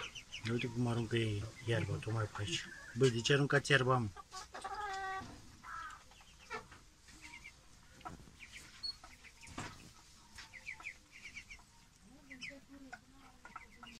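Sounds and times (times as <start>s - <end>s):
ducklings peeping: 0.0s - 13.9s.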